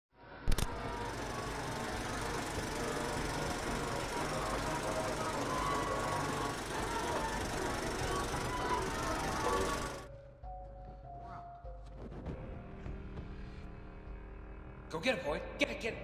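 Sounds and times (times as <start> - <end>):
film projector rattling: 0.5 - 10.1.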